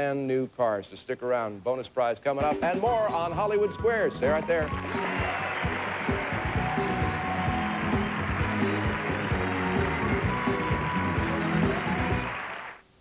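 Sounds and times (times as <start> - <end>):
game show music with beat: 2.4 - 12.8
audience applause: 3.6 - 12.8.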